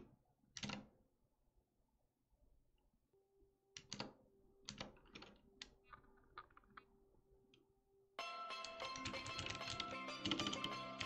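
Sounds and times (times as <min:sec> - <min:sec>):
computer keyboard keystrokes: 0:09.0 - 0:10.7.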